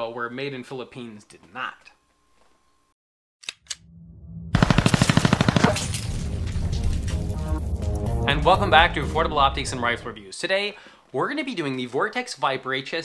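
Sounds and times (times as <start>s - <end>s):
automatic gunfire burst: 4.6s - 5.9s
music: 6.0s - 10.2s.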